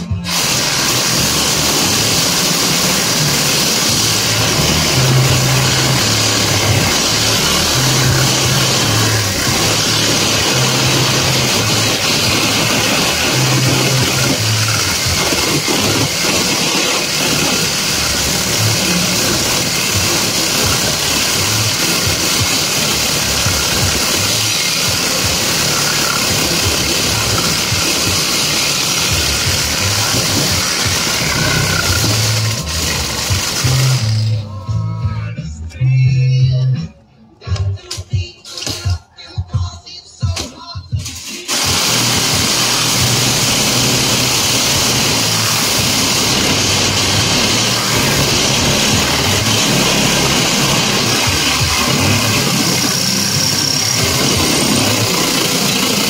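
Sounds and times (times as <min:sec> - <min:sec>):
reciprocating saw cutting wire: 0:00.0 - 0:34.4, 0:41.3 - 0:56.0
background music with bass line: 0:00.0 - 0:56.0.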